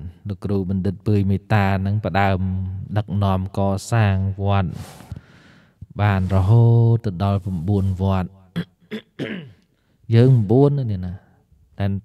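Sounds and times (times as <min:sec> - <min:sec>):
man speaking: 0:06.0 - 0:08.3, 0:10.1 - 0:11.2, 0:11.8 - 0:12.0
man clearing his throat: 0:08.5 - 0:09.7.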